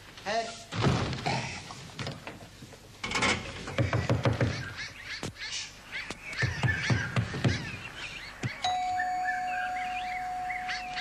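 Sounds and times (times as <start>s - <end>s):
bird and animal calls: 3.4s - 11.0s.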